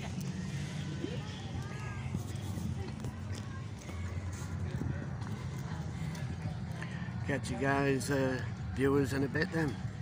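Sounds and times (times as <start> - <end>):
footsteps on brick paving: 0.0 - 8.6
low outdoor rumble: 0.0 - 10.0.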